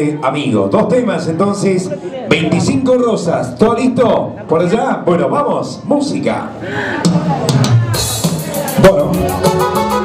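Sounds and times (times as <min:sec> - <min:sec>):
backing track with drum beat: 0:06.8 - 0:10.0.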